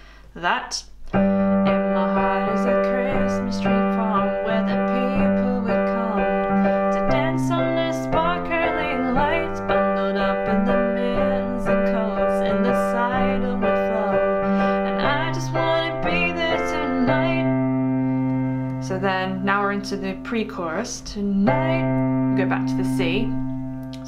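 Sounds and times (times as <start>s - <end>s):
piano chord accompaniment: 1.1s - 24.0s
person singing: 1.6s - 17.6s.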